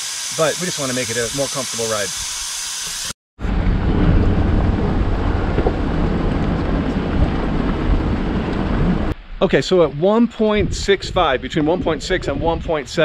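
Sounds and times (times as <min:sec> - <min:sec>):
wind buffeting microphone: 0:03.4 - 0:09.2, 0:10.4 - 0:13.0
engine and tyres rumbling: 0:03.4 - 0:09.3.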